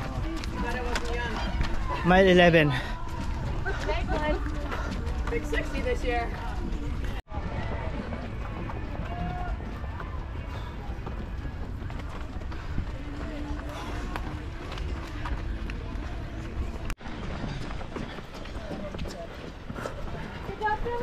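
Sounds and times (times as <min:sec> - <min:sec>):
faint voices: 0:02.8 - 0:21.0.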